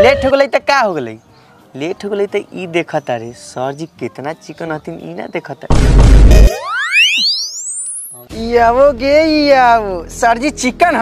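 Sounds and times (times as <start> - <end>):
loud boom: 5.7 - 6.6
rising whistle: 6.7 - 8.2.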